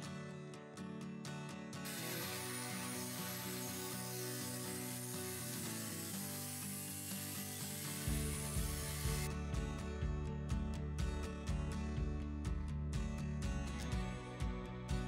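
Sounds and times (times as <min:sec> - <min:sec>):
angle grinder cutting steel: 0:01.8 - 0:09.3.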